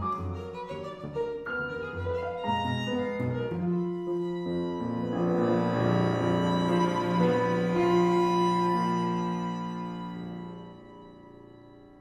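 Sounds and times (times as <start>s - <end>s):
cello: 0.0s - 12.0s
piano: 0.0s - 12.0s
violin: 0.0s - 12.0s.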